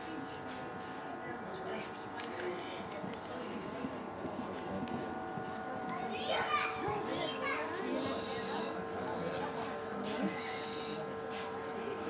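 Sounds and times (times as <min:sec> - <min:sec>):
general chatter: 0:00.0 - 0:12.0
steady hum: 0:00.0 - 0:12.0.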